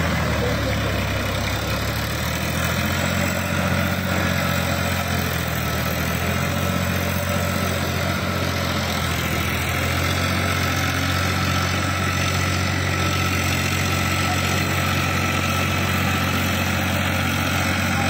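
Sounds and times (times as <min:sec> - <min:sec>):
rotary tiller in wet mud: 0:00.0 - 0:18.0
tractor diesel engine running: 0:00.0 - 0:18.0.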